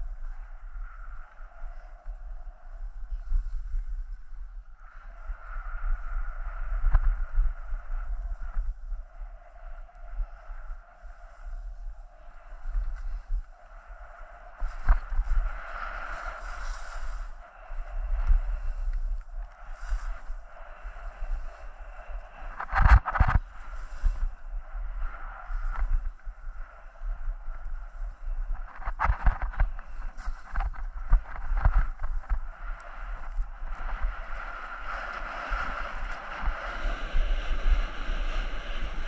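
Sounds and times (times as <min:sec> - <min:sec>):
wind rumbling on microphone: 0:00.0 - 0:39.0
skis scraping over snow: 0:14.7 - 0:17.3, 0:29.6 - 0:32.3.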